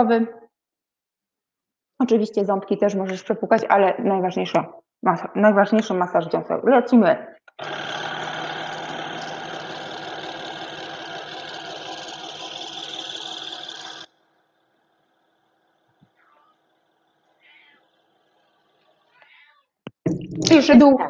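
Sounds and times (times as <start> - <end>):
electric toothbrush buzzing: 7.6 - 19.2.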